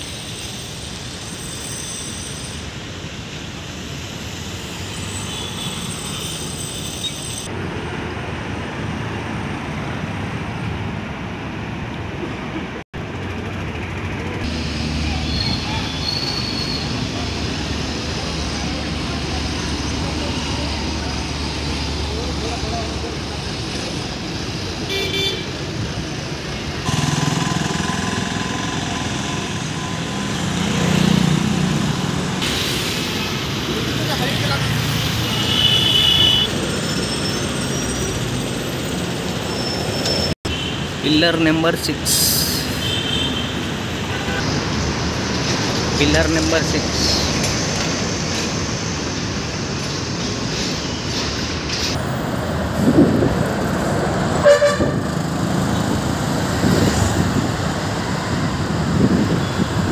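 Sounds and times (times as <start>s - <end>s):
road traffic: 0.0s - 59.9s
vehicle horns tooting: 24.9s - 25.6s, 35.2s - 36.6s, 42.6s - 44.5s, 54.4s - 55.1s.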